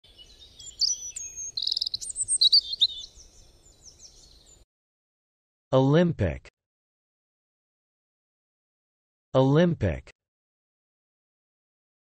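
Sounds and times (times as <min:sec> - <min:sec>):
small birds singing: 0:00.0 - 0:04.6.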